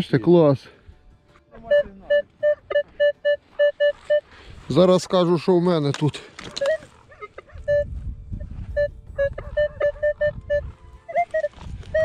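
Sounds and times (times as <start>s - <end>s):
metal detector beeps: 1.6s - 4.3s, 6.4s - 12.0s.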